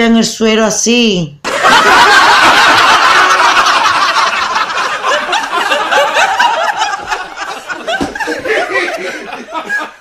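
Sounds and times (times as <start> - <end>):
people laughing: 1.5 - 10.0.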